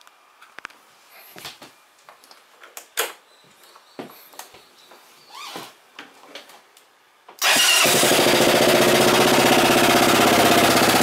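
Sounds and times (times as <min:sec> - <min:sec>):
short squeak: 0:05.2 - 0:05.7.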